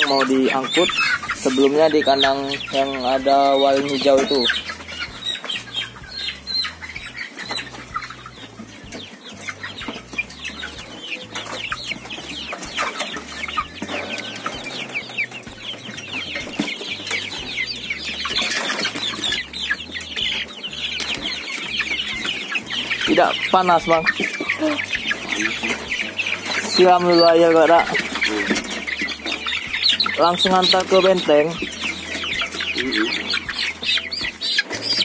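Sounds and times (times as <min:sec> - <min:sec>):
cockerels squawking and clucking: 0:00.0 - 0:35.0.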